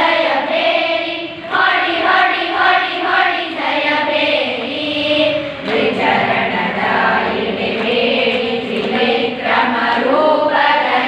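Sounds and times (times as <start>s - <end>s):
girls singing in unison: 0.0s - 11.0s.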